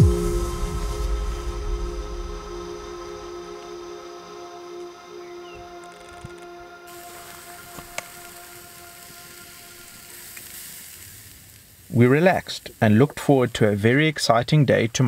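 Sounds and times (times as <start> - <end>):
ambient music chords: 0.0 - 10.6
wood fire crackle: 5.8 - 15.0
meat sizzling on a grill: 6.9 - 14.3.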